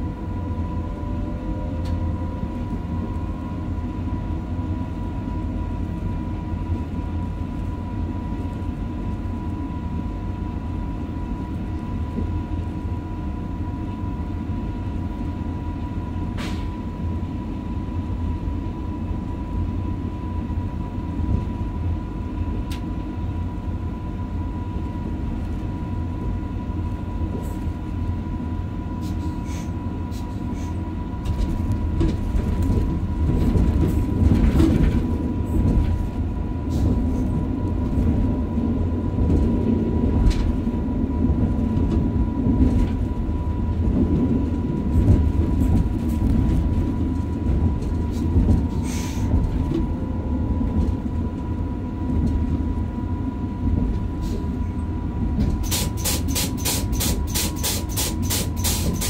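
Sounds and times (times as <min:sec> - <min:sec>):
train rumbling on track: 0:00.0 - 0:59.0
train wheel clicks: 0:55.5 - 0:59.0.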